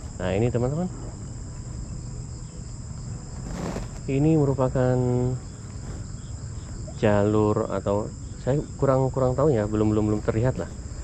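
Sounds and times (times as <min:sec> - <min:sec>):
insects chirring: 0:00.0 - 0:11.0
low steady hum: 0:00.0 - 0:11.0.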